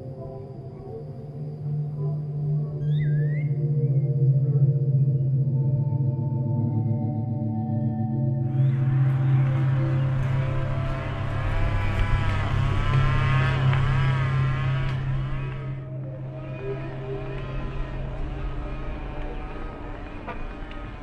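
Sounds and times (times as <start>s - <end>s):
steady engine sound: 8.6s - 21.0s
heavy truck passing: 8.8s - 15.8s.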